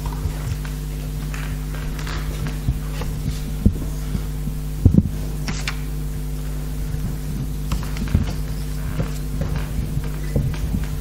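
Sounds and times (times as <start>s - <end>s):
electrical hum: 0.0s - 11.0s
microphone handling thumps: 0.0s - 11.0s.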